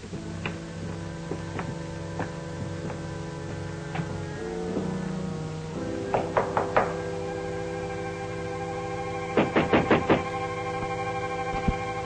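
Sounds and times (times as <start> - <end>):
held chord of background music: 0.0 - 12.0
knocks on wooden door: 6.1 - 7.0.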